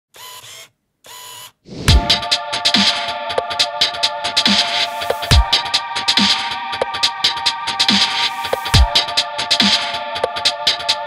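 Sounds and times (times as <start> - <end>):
rising whoosh: 1.7 - 2.3
deep low hit: 1.8 - 2.3.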